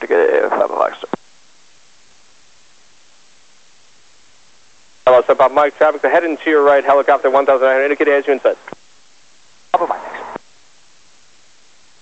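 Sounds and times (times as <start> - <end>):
radio voice transmission: 0.0 - 1.2, 5.1 - 8.8, 9.7 - 10.4
radio static hiss: 0.0 - 12.0.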